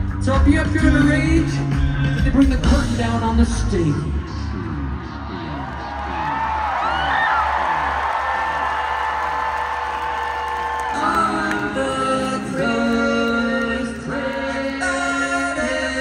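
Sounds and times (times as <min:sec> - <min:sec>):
live rock band music: 0:00.0 - 0:04.1
audience whooping and cheering: 0:04.2 - 0:12.2
voices singing held chord: 0:11.0 - 0:16.0.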